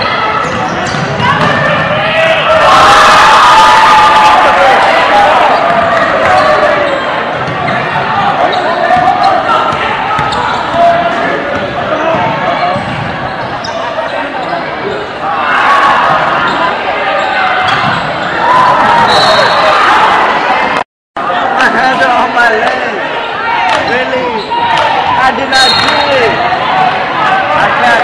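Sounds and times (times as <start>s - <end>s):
crowd talking and calling out: 0.0s - 28.0s.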